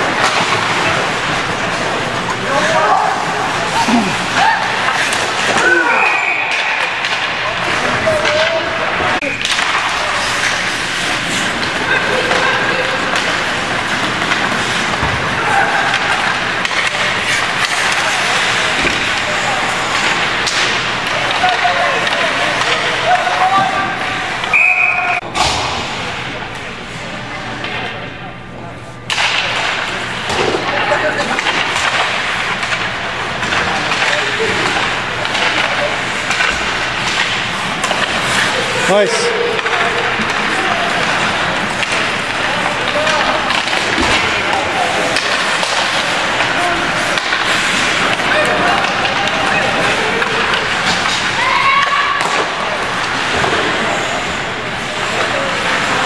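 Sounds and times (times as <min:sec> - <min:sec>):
skates stick and puck noise: 0:00.0 - 0:56.0
spectators' voices: 0:00.0 - 0:56.0
referee whistle blast: 0:24.5 - 0:25.2.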